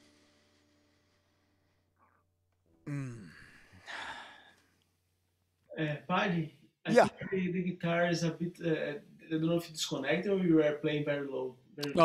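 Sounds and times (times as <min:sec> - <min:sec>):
man sighing: 0:02.9 - 0:04.5
breathy exhale: 0:02.9 - 0:04.6.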